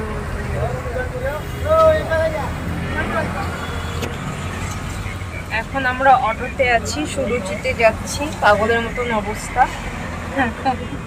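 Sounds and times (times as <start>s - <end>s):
auto-rickshaw engine rumble: 0.0s - 11.0s
faint voices: 0.0s - 11.0s.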